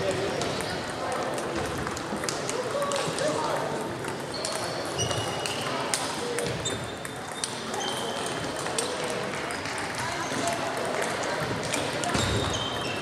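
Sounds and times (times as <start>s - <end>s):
murmur of voices: 0.0s - 13.0s
table tennis balls clicking: 0.4s - 13.0s.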